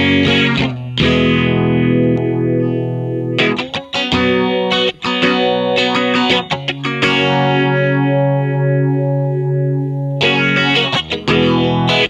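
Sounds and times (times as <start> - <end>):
electric guitar with phaser: 0.0 - 12.0.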